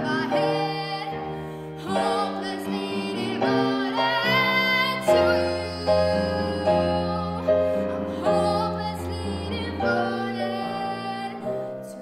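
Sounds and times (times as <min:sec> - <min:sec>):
grand piano: 0:00.0 - 0:12.0
girl singing with vibrato: 0:01.8 - 0:11.5.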